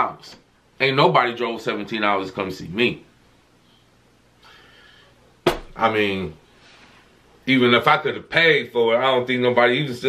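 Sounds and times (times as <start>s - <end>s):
faint breathy sound: 3.6s - 5.4s.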